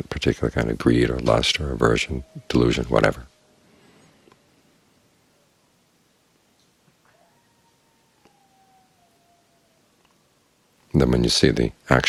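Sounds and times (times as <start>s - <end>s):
faint clicks: 4.0s - 4.5s, 8.2s - 8.4s, 10.0s - 10.2s.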